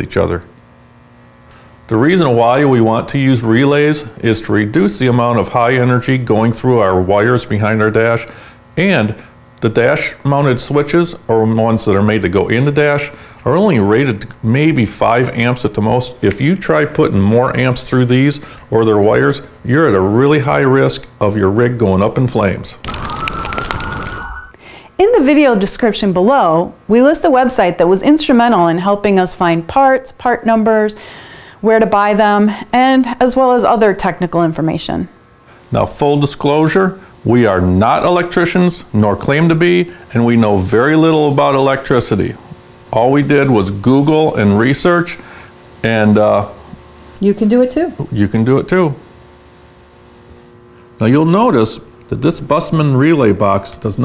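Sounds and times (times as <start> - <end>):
faint steady hum: 0.0 - 54.0
fire burning with crackles: 22.8 - 24.5
steady high tone: 22.8 - 24.6.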